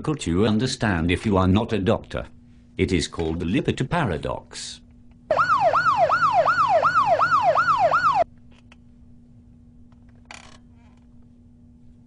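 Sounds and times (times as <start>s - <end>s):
emergency siren yelping: 5.3s - 8.3s.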